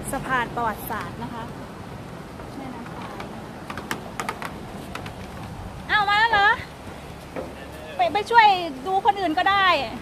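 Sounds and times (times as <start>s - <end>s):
steady background noise: 0.0s - 10.0s
footsteps on wooden planks: 3.0s - 5.9s, 6.8s - 7.9s.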